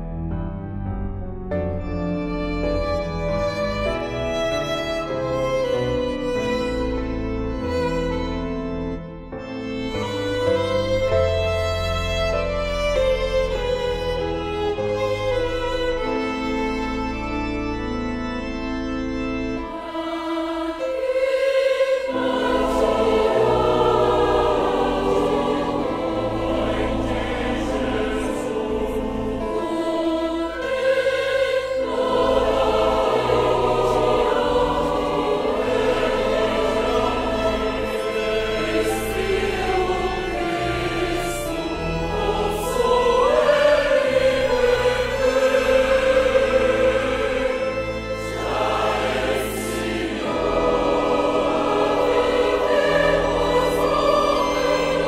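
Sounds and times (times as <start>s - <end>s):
choir singing a hymn: 0.6s - 55.0s.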